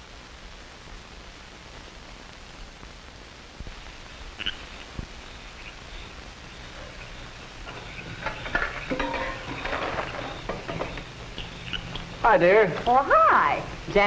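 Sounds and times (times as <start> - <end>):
film soundtrack hiss: 0.0 - 14.0
cookware clinking: 7.7 - 11.0.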